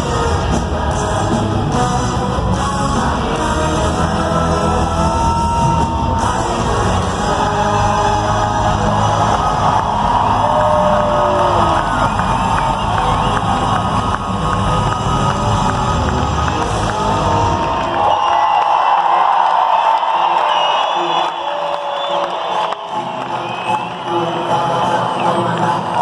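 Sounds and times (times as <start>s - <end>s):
live band music: 0.0s - 18.0s
crowd cheering and whooping: 4.5s - 26.0s.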